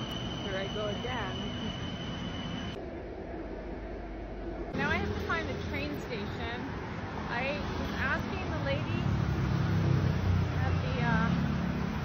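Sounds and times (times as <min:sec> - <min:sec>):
low rumble of city noise: 0:00.0 - 0:12.0.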